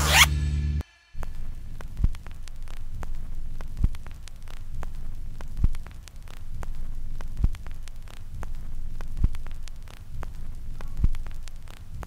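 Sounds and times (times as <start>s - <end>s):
recording hum and crackle: 1.2s - 12.0s.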